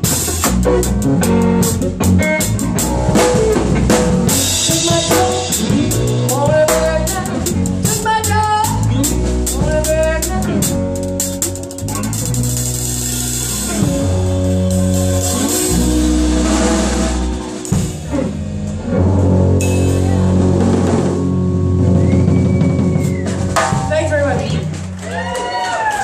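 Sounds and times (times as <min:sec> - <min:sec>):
live band music: 0:00.0 - 0:26.0
cymbals crashing: 0:19.6 - 0:20.9
sharp drum and cymbal hits: 0:19.6 - 0:21.1, 0:23.5 - 0:24.2.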